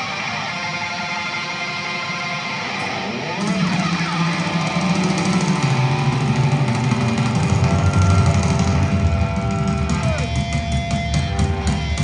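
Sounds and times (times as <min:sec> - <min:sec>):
drums: 0:00.0 - 0:12.0
electric guitar held notes: 0:00.0 - 0:12.0
bass guitar: 0:02.7 - 0:12.0.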